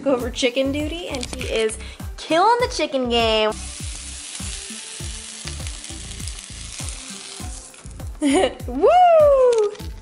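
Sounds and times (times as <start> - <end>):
background music with thudding beat: 0.0 - 10.0
chicken sizzling in a frying pan: 3.5 - 8.1.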